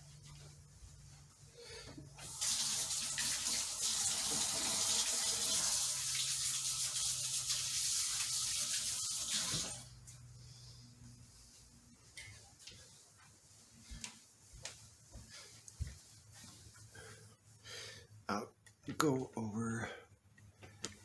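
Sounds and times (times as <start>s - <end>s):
tap water running: 2.2s - 10.1s.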